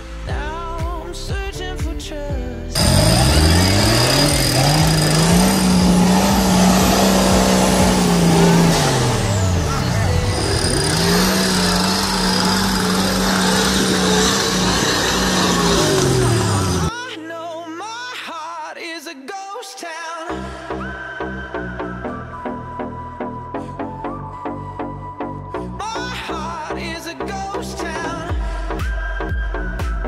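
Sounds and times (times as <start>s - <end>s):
background music: 0.0s - 30.0s
truck engine revving hard: 2.8s - 16.9s.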